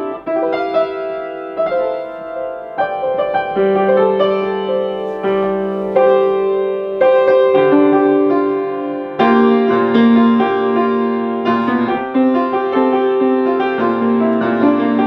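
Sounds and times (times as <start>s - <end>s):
grand piano chords: 0.0s - 15.0s.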